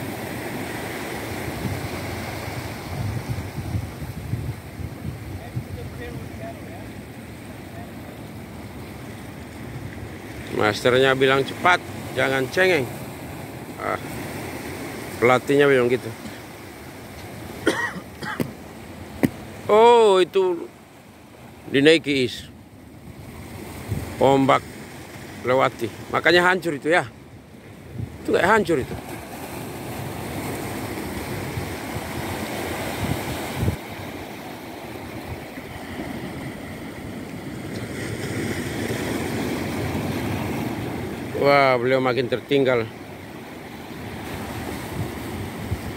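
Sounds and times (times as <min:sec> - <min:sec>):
sea and wind noise: 0:00.0 - 0:45.9
wind buffeting microphone: 0:01.4 - 0:06.5, 0:23.0 - 0:24.2, 0:27.8 - 0:29.0, 0:31.0 - 0:34.0, 0:44.3 - 0:45.9
person coughing: 0:17.6 - 0:18.5.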